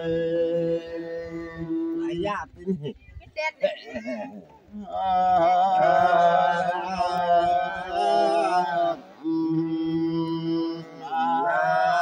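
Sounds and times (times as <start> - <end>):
man chanting: 0.0 - 2.8, 4.7 - 12.0.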